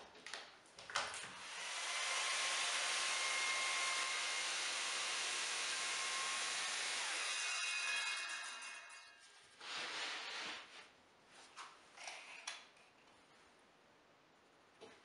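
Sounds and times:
circular saw cutting a board: 0:01.4 - 0:10.2.

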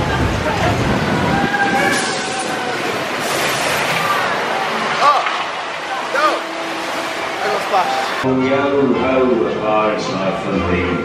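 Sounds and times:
steady ride ambience hiss: 0:00.0 - 0:08.3.

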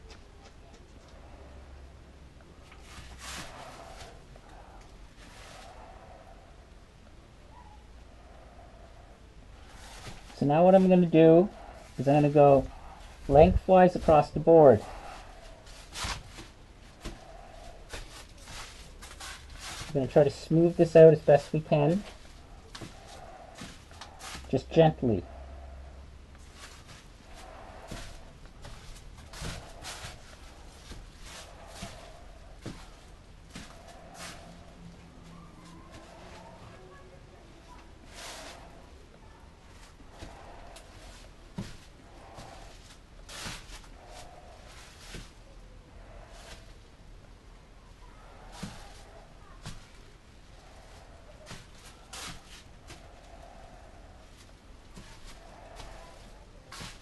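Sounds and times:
low steady hum: 0:00.0 - 0:57.0
brush swishing on wet coating: 0:02.6 - 0:06.8, 0:08.1 - 0:57.0.

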